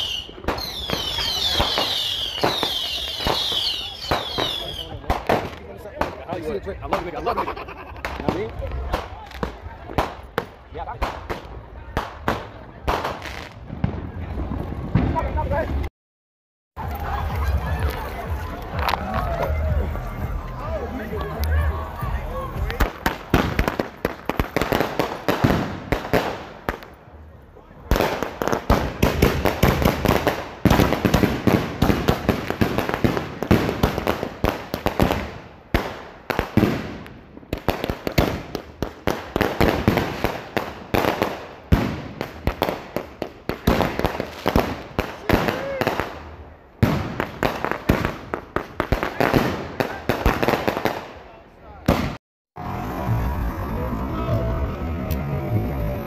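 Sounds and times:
fireworks launching and bursting: 0.0s - 15.9s, 16.8s - 27.2s, 27.8s - 56.0s.

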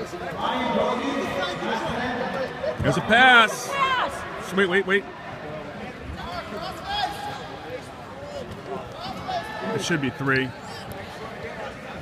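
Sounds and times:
spectators and coaches calling out: 0.0s - 12.0s.

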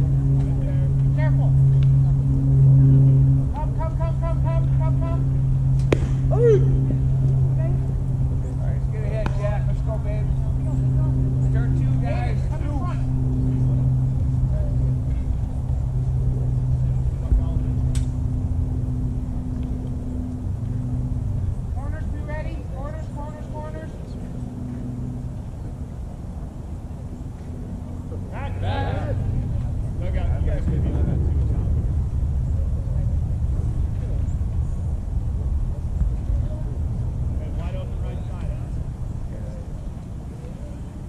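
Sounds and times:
low motor hum: 0.0s - 41.0s
sharp crack: 5.7s - 6.8s
players and spectators calling out: 28.3s - 29.4s.

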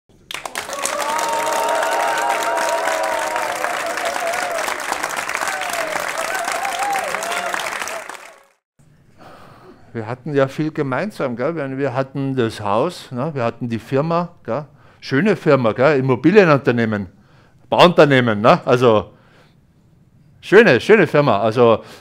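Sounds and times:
audience applauding: 0.2s - 8.6s.

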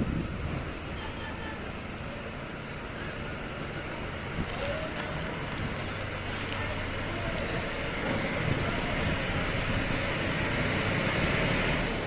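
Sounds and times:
distant road traffic hum: 0.0s - 12.0s.

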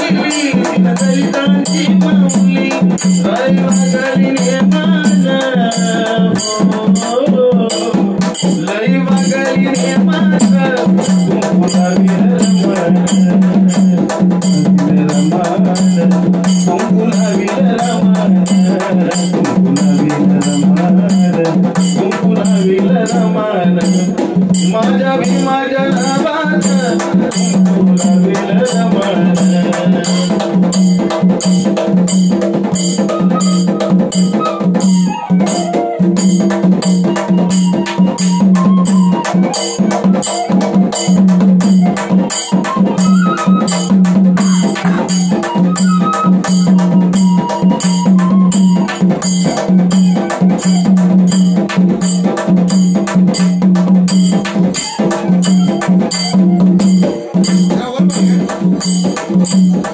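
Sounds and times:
bamboo flute melody: 0.0s - 59.7s
frame drum beats: 0.0s - 59.9s.

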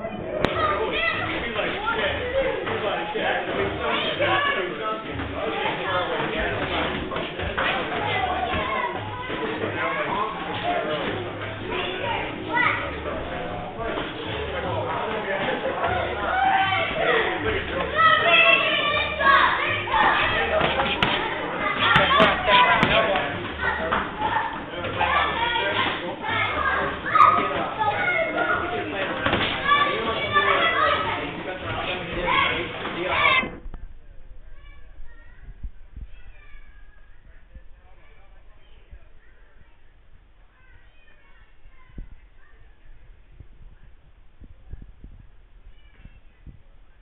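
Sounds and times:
people talking at once: 0.0s - 45.0s.

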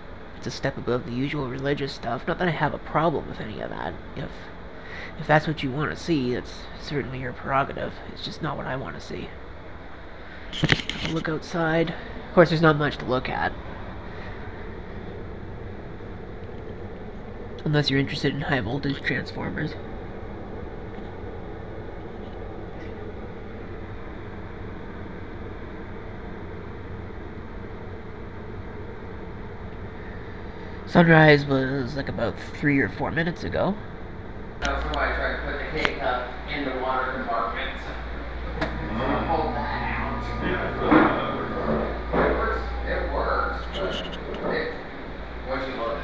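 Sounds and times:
air conditioner humming: 0.0s - 46.0s
indistinct voices: 10.4s - 14.8s, 17.6s - 19.8s, 34.6s - 46.0s.

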